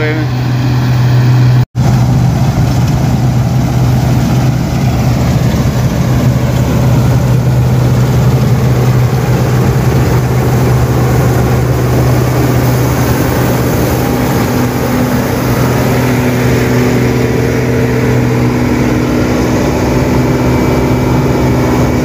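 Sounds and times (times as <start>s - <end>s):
combine harvester running: 0.0s - 22.0s.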